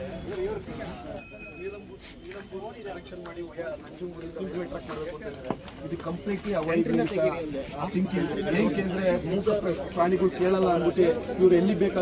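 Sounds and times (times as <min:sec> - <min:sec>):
microphone feedback squeal: 0:00.0 - 0:02.8.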